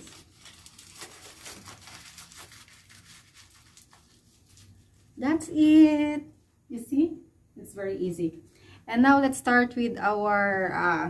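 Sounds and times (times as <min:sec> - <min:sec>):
aluminium foil crinkling: 0:00.0 - 0:05.2.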